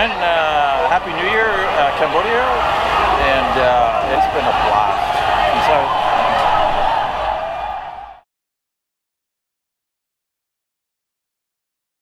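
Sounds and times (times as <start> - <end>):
busy wet street noise: 0.0 - 8.0.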